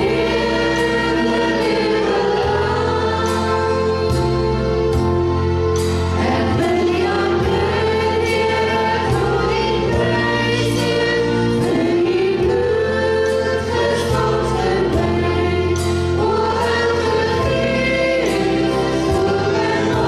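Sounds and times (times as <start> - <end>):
group singing worship song: 0.0 - 20.0
instrumental backing: 0.0 - 20.0
steady bass notes: 0.0 - 20.0.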